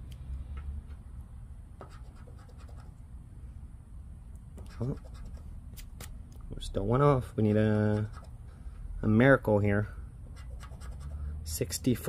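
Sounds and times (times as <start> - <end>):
lottery ticket being scratched: 4.6 - 5.5, 7.8 - 8.4, 10.3 - 11.3.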